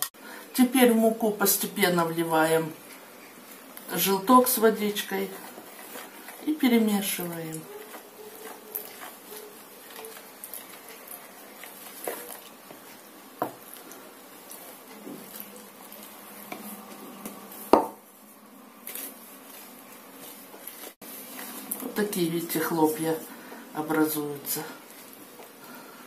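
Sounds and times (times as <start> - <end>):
spoon scraping plastic bowl: 4.9 - 17.7.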